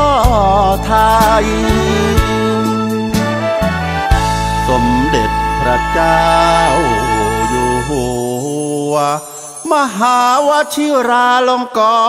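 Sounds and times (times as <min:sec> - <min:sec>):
person singing slow song: 0:00.0 - 0:03.1, 0:04.7 - 0:12.0
backing music: 0:00.0 - 0:10.4.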